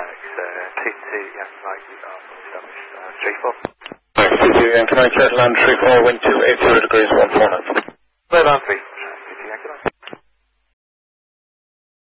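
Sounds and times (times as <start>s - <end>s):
pilot's voice over radio: 0.0s - 10.0s
radio transmission click: 3.2s - 8.0s, 9.5s - 10.3s.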